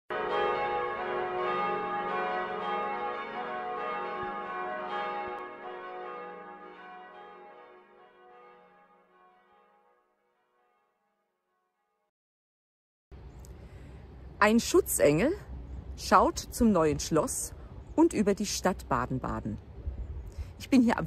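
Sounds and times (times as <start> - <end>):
bells ringing: 0.1 - 10.0.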